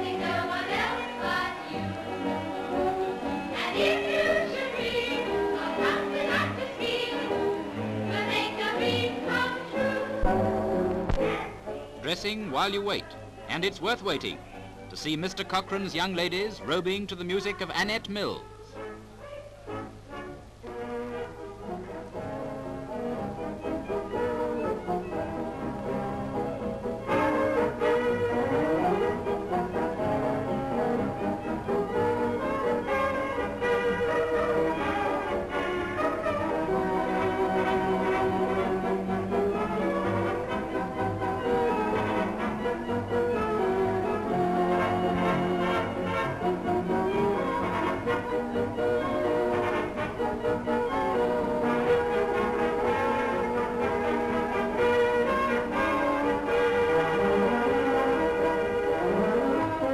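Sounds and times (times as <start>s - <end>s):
cabaret orchestra playing: 12.0s - 18.9s, 19.7s - 59.9s.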